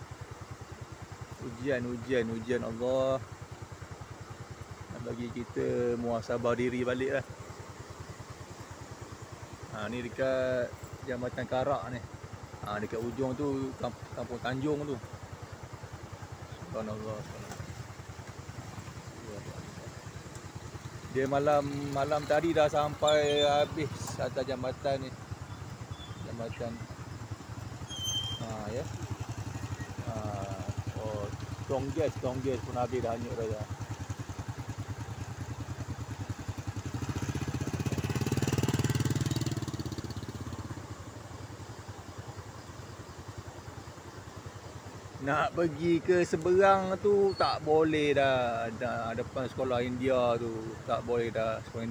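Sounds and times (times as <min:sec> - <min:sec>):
motorcycle engine idling: 0:00.0 - 0:51.9.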